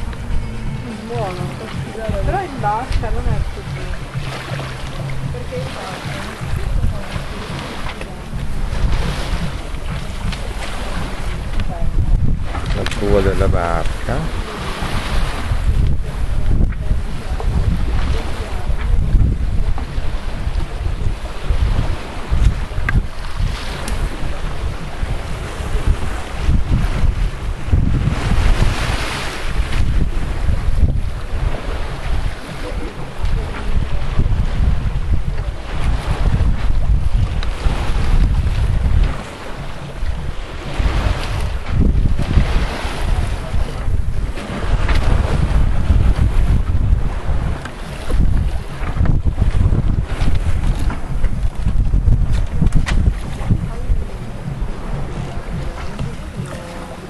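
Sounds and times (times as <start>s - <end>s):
sea water rushing along hull: 0.0s - 57.0s
wind buffeting microphone: 0.0s - 57.0s.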